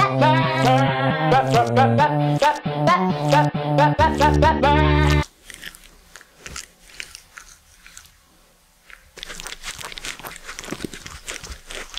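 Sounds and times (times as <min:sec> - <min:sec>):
cat licking: 0:05.0 - 0:11.9.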